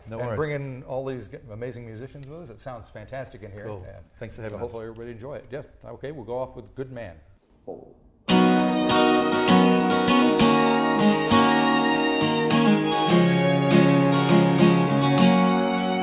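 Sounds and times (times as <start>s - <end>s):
acoustic guitar strumming: 8.3s - 16.0s
string section playing: 8.3s - 16.0s.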